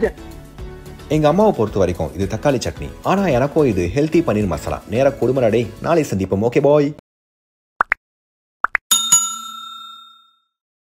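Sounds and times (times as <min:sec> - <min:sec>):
bell-like ding: 0:08.9 - 0:10.6.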